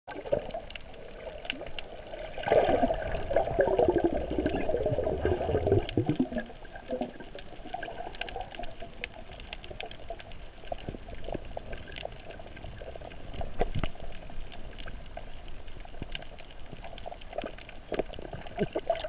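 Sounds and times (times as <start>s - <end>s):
faint clicks underwater: 0.1s - 19.0s
underwater bubbling and gurgling: 0.1s - 19.0s.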